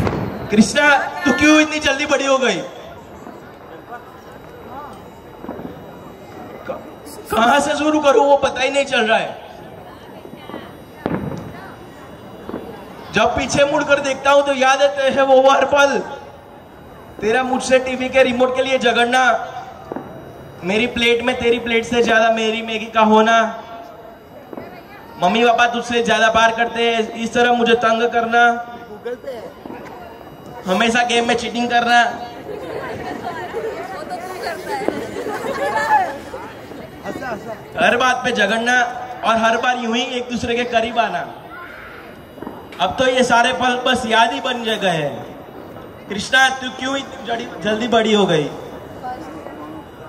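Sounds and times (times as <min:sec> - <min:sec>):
sharp bangs with ringing tail: 0:00.0 - 0:03.0
chatter of voices: 0:00.0 - 0:50.0.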